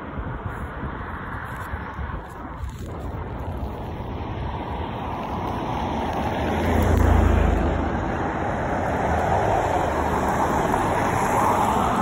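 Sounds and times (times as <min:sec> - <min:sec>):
cars driving past: 0:04.0 - 0:12.0.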